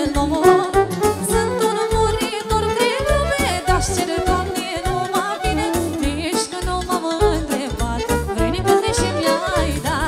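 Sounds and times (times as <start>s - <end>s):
woman singing into a microphone: 0.0s - 10.0s
band with steady bass beat: 0.2s - 10.0s.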